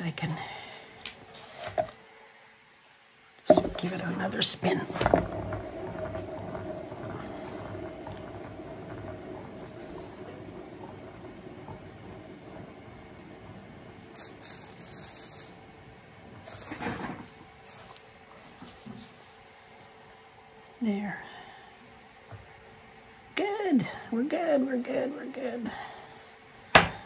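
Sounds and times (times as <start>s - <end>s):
turntable bearing whirring: 3.4s - 17.6s.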